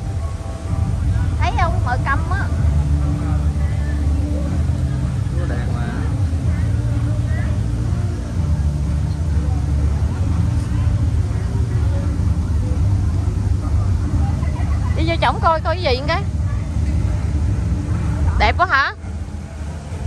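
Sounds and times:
distant voices talking: 0:00.0 - 0:20.0
steady low rumble: 0:00.0 - 0:20.0.

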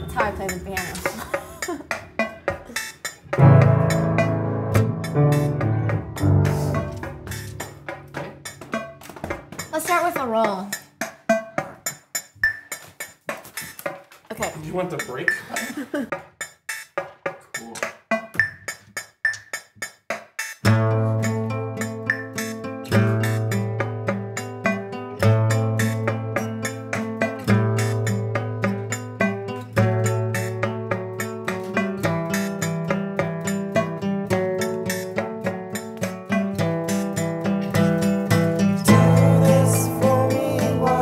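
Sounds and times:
quick picked guitar notes: 0:00.0 - 0:10.5, 0:20.6 - 0:41.0
low held chords: 0:03.3 - 0:08.7, 0:38.2 - 0:41.0.

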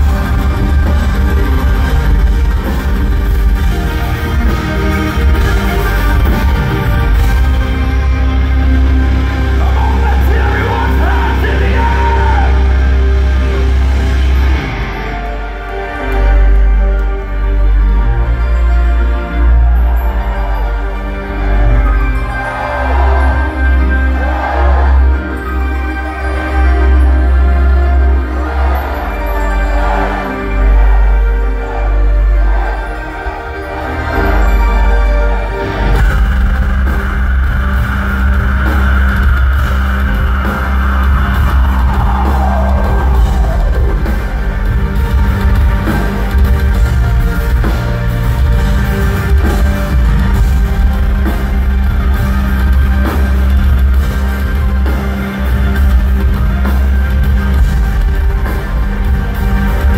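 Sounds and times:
bass and drums rumble: 0:00.0 - 0:10.5, 0:35.7 - 0:59.9
distorted guitars: 0:00.0 - 0:16.4
live metal band music: 0:00.0 - 0:59.9.

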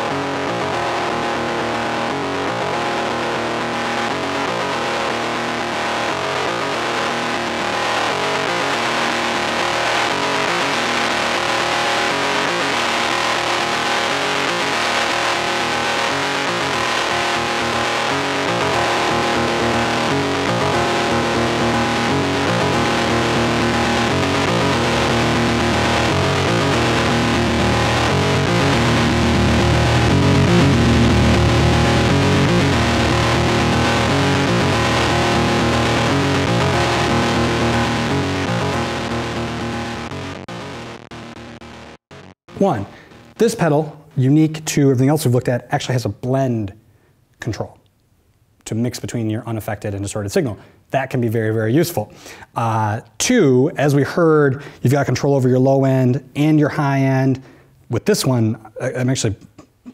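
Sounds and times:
heavily distorted synthesizer notes: 0:00.0 - 0:44.8.

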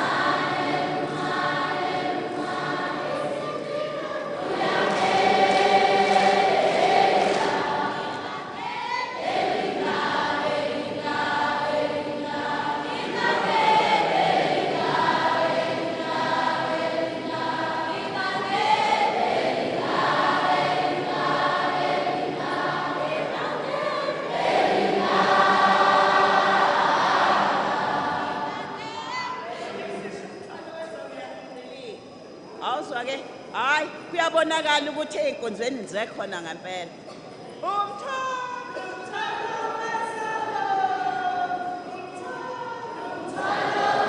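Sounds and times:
group singing: 0:00.0 - 0:30.2, 0:38.7 - 0:44.0.

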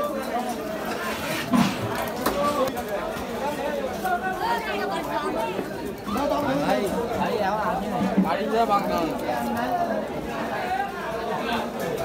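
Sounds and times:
market chatter: 0:00.0 - 0:12.0.

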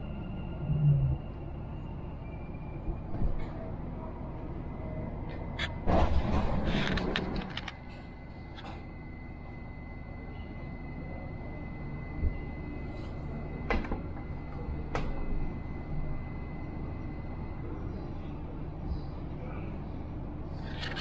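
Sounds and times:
low hum of train equipment: 0:00.0 - 0:21.0.

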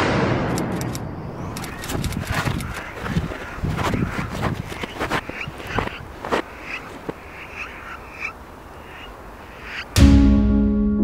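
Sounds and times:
croaking animal calls: 0:01.6 - 0:09.9.

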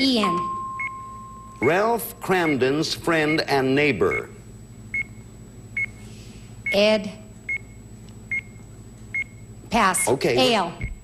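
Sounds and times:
countdown clock beeping: 0:00.2 - 0:03.5.

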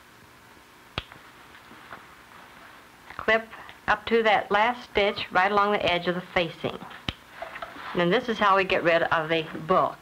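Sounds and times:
film soundtrack hiss: 0:00.0 - 0:10.0.

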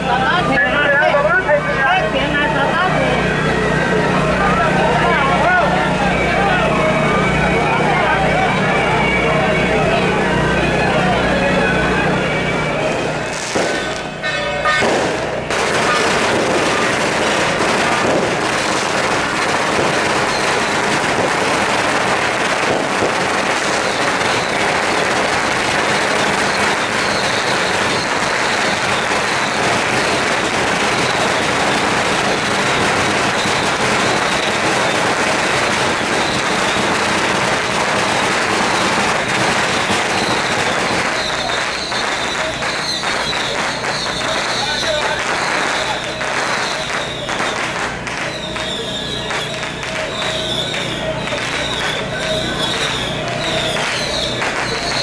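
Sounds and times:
firecrackers crackling: 0:00.0 - 0:55.0.

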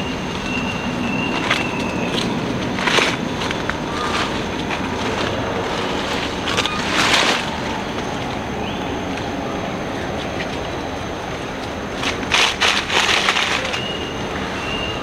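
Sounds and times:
steady rushing outdoor noise: 0:00.0 - 0:15.0
bursts of rustling: 0:01.3 - 0:08.3, 0:11.9 - 0:14.2.

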